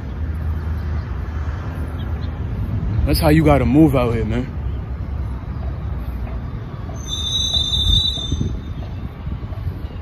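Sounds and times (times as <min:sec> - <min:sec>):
high steady squeal: 0:06.9 - 0:09.0
wind rumble on microphone: 0:07.6 - 0:10.0.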